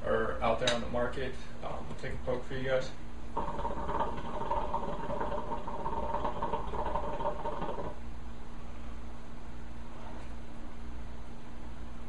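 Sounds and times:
hookah water bubbling: 0:03.3 - 0:08.0.

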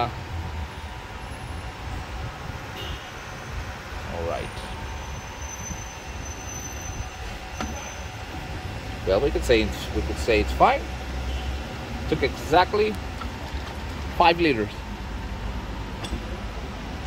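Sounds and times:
low hum of car coolant pumps: 0:00.0 - 0:17.0.

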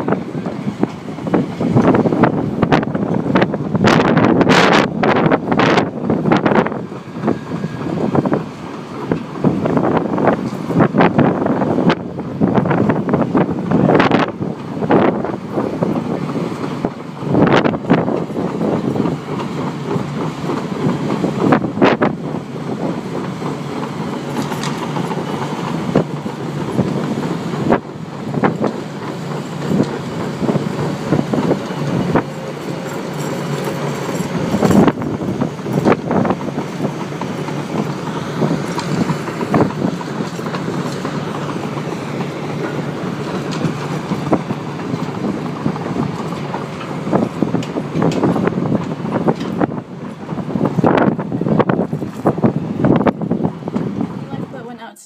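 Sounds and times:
wind buffeting microphone: 0:00.0 - 0:54.9
tracked tractor running: 0:00.0 - 0:55.0
tracks clanking and knocking: 0:00.0 - 0:55.0.

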